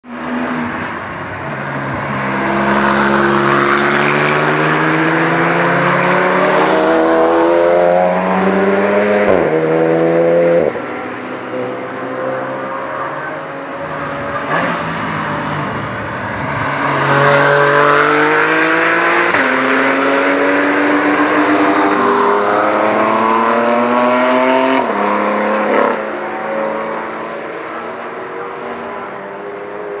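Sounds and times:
racing car engines revving: 0.1s - 30.0s.

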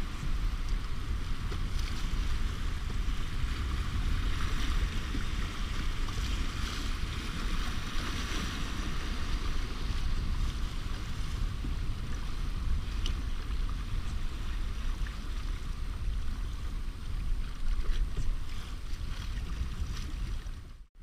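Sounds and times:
waves splashing against canoe hull: 0.0s - 20.8s
rushing river water: 0.0s - 20.9s
wind buffeting microphone: 0.0s - 20.9s.

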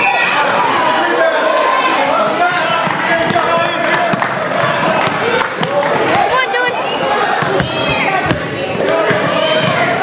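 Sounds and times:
people shouting: 0.0s - 10.0s.

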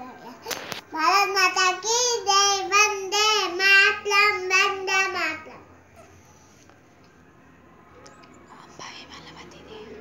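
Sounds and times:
faint whispering: 8.3s - 10.0s.

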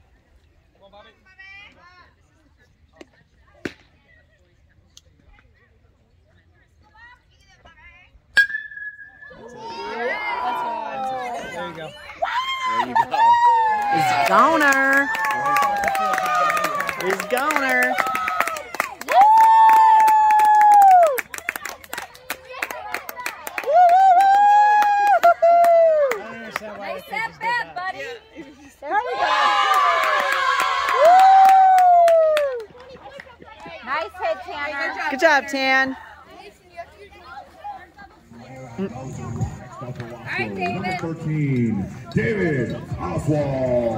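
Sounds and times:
metal bat pinging a ball: 8.4s - 9.4s
scattered hand claps: 14.1s - 26.7s
faint voices: 32.6s - 43.9s.

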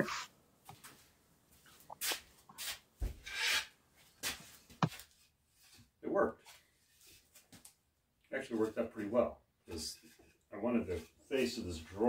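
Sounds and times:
wood scraping on wood: 2.6s - 5.9s.

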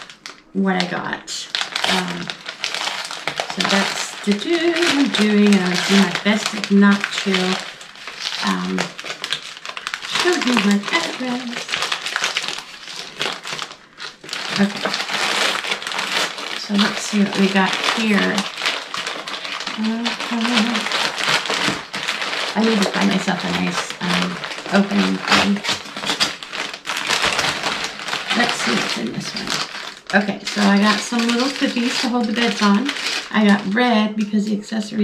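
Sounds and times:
paper mailer bag crinkling: 0.0s - 35.0s.

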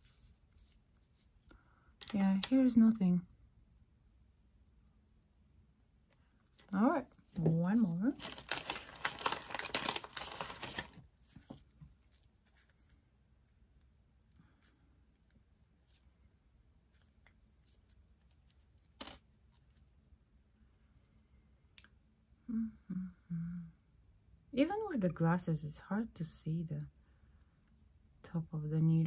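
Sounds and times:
packaging torn and crinkled: 7.4s - 11.1s.

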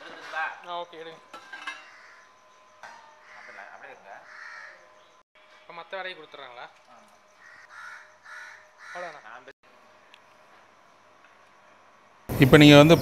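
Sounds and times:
crows cawing: 1.5s - 5.2s, 7.3s - 9.5s.

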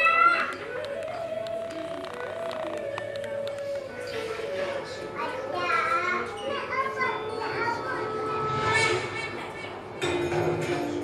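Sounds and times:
children and adults talking: 0.0s - 10.2s.

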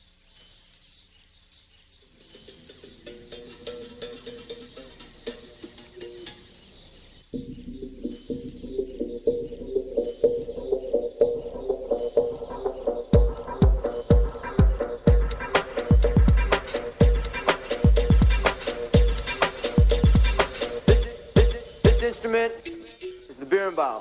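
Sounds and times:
faint chirping: 0.0s - 24.0s
intro music with rhythmic notes: 2.1s - 24.0s.

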